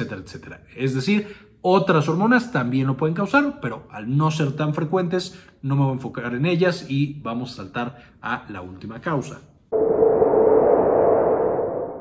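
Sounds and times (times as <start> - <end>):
held tone: 9.7 - 12.0.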